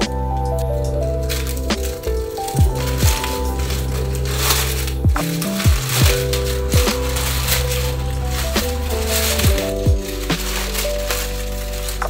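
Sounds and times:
deep pitch-dropping beats: 0.0 - 7.4
background music: 0.0 - 12.0
plastic bag crumpling: 0.0 - 12.0.

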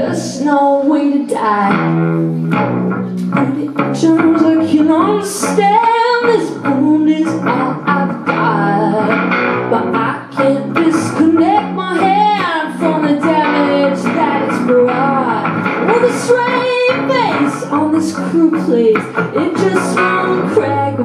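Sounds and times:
woman singing: 0.0 - 2.5, 3.2 - 21.0
strummed acoustic guitar: 1.8 - 21.0.

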